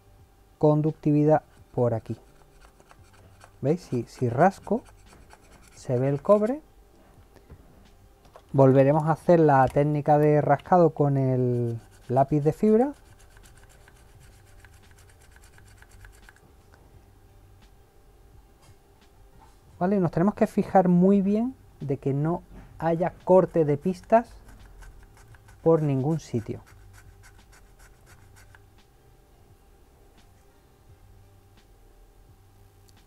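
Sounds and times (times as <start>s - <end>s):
pen scratching circuit board: 1.4s - 6.6s, 11.4s - 16.4s, 23.2s - 28.6s.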